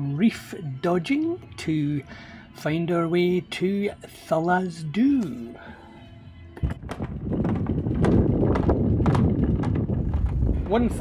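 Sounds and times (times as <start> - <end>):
knocks and clicks on deck: 6.6 - 10.4.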